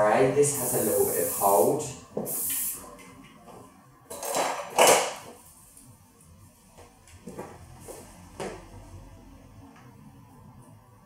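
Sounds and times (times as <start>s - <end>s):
aerosol spray hissing: 0.4s - 2.9s.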